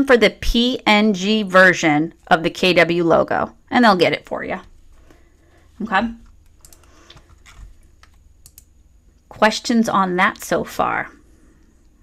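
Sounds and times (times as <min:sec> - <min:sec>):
computer keyboard clicks: 0:06.2 - 0:08.7.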